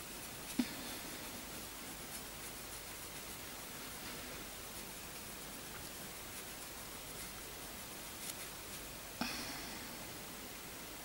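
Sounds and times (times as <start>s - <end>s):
brush rustling over skin: 0.0s - 9.2s
faint steady hiss: 0.0s - 11.0s.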